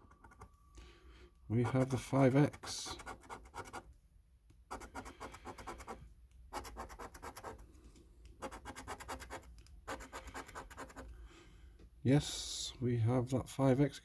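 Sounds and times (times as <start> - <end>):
coin scraping scratch card: 1.6 - 3.8, 4.7 - 7.6, 8.4 - 11.1.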